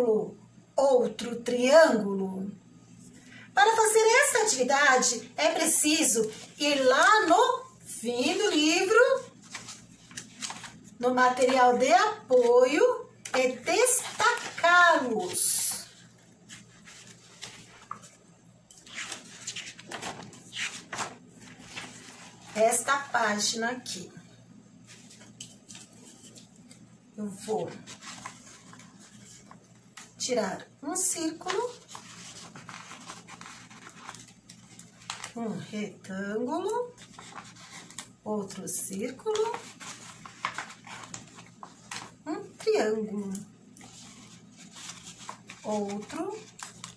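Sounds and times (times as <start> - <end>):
pages turning: 8.2 - 11.6, 13.2 - 23.1, 27.6 - 30.2, 31.5 - 35.4, 37.0 - 38.2, 39.3 - 42.2, 43.7 - 46.9.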